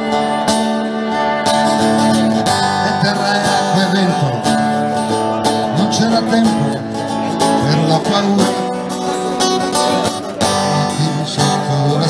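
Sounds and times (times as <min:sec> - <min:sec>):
violin melody: 0:00.0 - 0:07.5
guitars strummed: 0:00.0 - 0:12.0.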